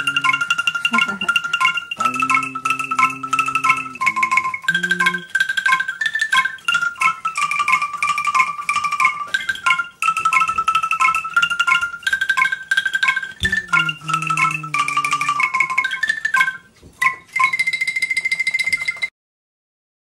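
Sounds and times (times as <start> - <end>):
angklung melody: 0.0 - 19.1.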